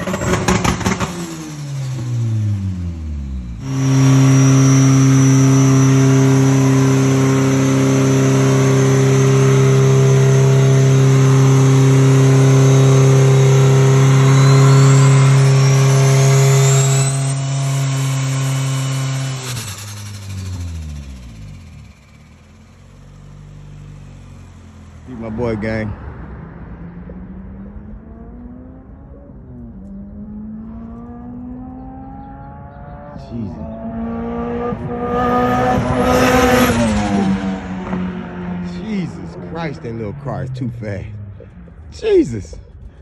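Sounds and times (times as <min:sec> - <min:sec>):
car engine at high revs: 0:00.0 - 0:43.0.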